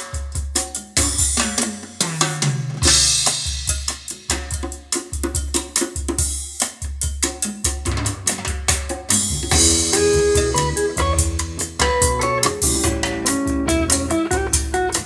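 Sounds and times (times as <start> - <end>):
music with drums and deep bass: 0.0 - 15.0.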